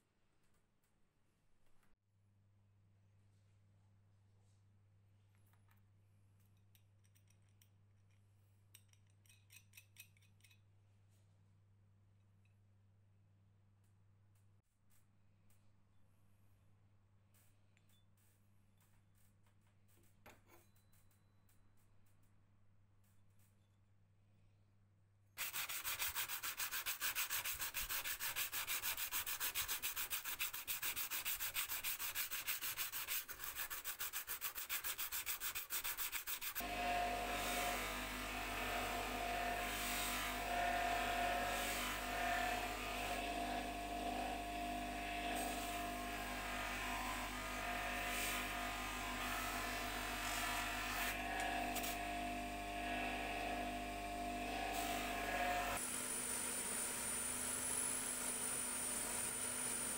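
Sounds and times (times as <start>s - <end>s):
bench grinder humming: 35.8s - 59.9s
steel blade grinding on wheel: 44.8s - 59.9s.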